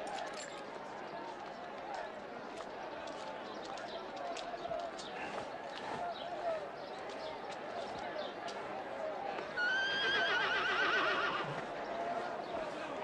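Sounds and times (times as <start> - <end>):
murmuring voices: 0.0 - 13.0
horse whinnying: 9.6 - 11.5.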